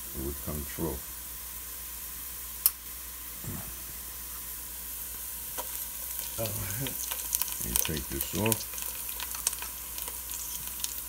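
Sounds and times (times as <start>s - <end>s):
onion and garlic sizzling in oil: 0.0s - 11.0s.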